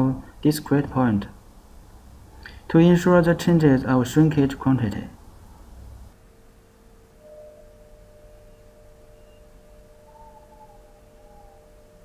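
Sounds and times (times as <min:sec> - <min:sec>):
steady pure tones: 0:00.0 - 0:12.0
faint wavering tone: 0:06.2 - 0:12.0.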